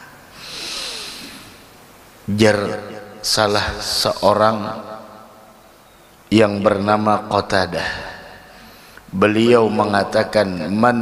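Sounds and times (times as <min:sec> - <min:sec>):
man breathing in: 0:00.3 - 0:01.6, 0:08.5 - 0:09.1.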